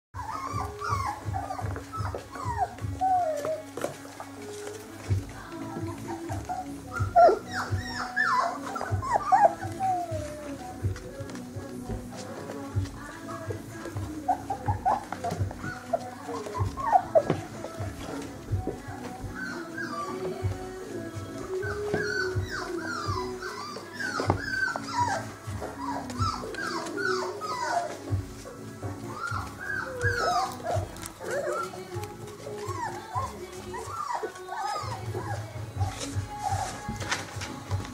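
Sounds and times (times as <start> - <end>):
puppies whining and yipping: 0.1 - 37.9.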